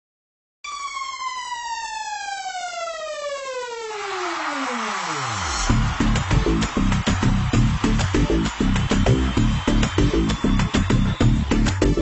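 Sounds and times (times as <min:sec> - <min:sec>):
falling synthesized tone sweep: 0:00.7 - 0:06.6.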